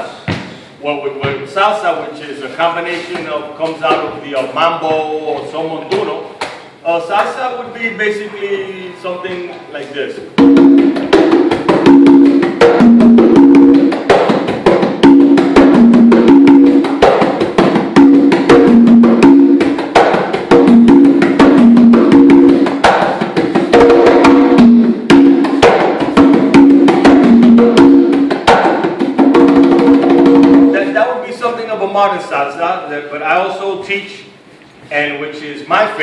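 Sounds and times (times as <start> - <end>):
congas played by hand: 0.0 - 31.5.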